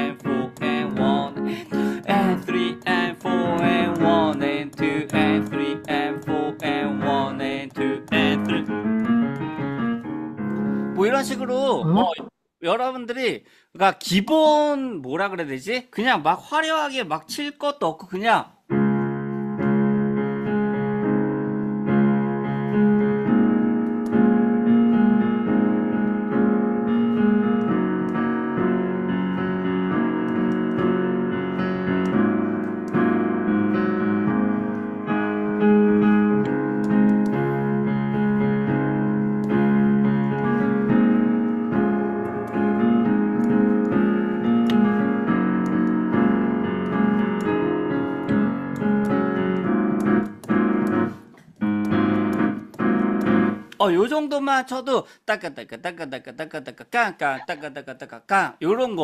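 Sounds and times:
digital piano jazz chords: 0:00.0 - 0:12.3, 0:18.6 - 0:54.1.

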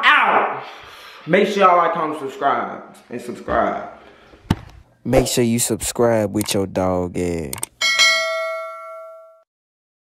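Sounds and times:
bright bell ding: 0:07.8 - 0:09.4.

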